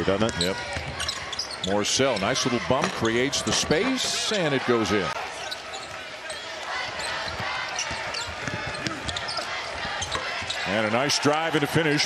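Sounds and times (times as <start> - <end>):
arena crowd noise: 0.0 - 12.0
sneaker squeaks: 0.3 - 3.3, 5.4 - 10.8
basketball dribbling on hardwood: 7.3 - 10.6.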